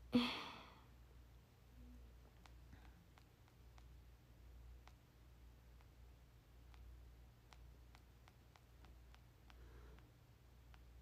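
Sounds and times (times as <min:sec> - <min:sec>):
woman sighing: 0:00.1 - 0:00.8.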